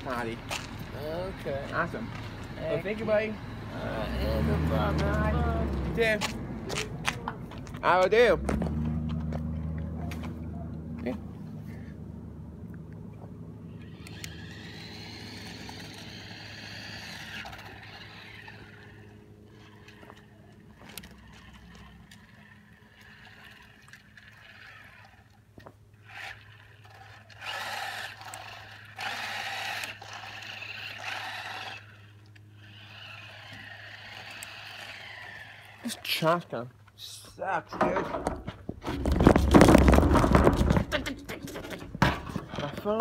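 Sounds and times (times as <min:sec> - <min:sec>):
electric toy car motor whining: 0:00.1 - 0:06.2, 0:13.6 - 0:36.2
steady low hum: 0:05.4 - 0:42.6.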